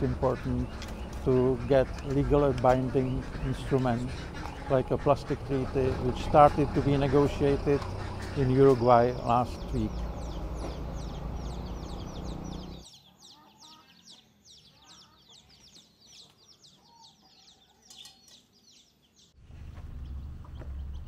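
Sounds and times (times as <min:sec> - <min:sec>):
chickens clucking: 0:00.0 - 0:18.9
chickens chirping: 0:00.0 - 0:21.0.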